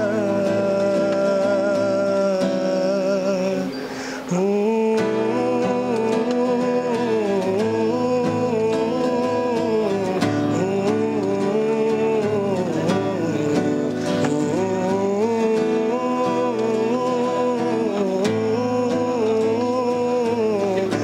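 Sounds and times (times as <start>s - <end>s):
acoustic guitar: 0.0s - 21.0s
person singing slow melody: 0.0s - 21.0s.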